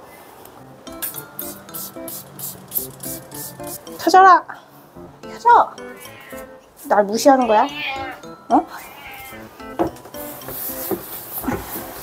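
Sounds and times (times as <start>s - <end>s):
light background music: 0.6s - 12.0s.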